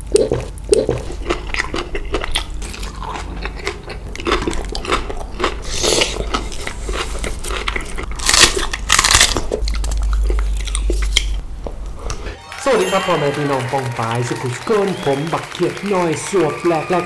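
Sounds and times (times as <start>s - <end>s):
crunchy biting and chewing: 0.0s - 11.5s.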